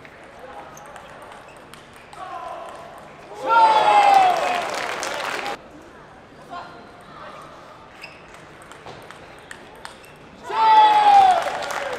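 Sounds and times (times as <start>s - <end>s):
table tennis ball clicking: 8.4s - 10.0s.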